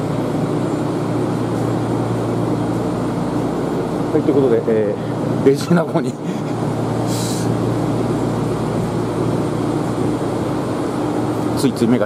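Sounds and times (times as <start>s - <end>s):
tram motors and wheels running: 0.0s - 12.0s.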